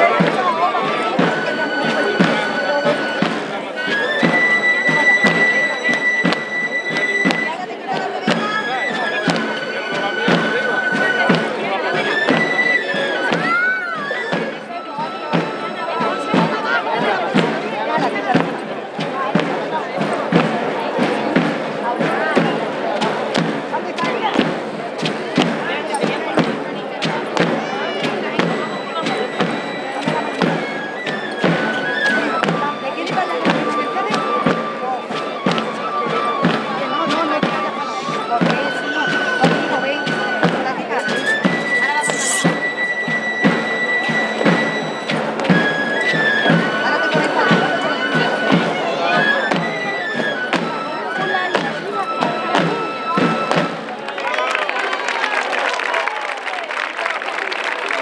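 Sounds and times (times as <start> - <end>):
high flute melody: 0.0 - 26.5, 27.1 - 54.6
steady drumbeat: 0.0 - 54.0
murmur of crowd voices: 0.0 - 58.0.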